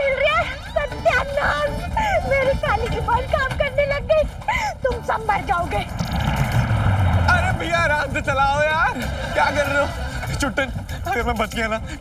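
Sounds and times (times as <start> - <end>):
deep rumble: 5.0 - 11.0
jet engines roaring: 5.8 - 10.2.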